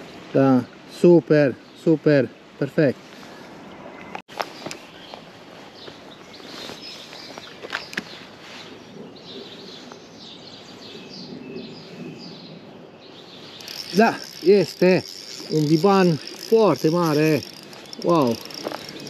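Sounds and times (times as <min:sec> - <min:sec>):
small birds chirping: 0:00.0 - 0:19.0.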